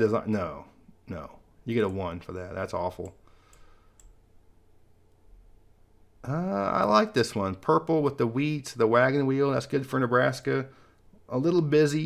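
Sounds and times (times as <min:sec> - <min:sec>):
computer mouse clicks: 0:03.0 - 0:04.2.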